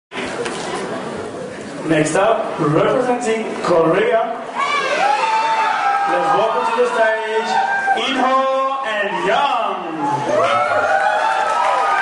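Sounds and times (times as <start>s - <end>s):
audience chatter: 0.1s - 3.8s.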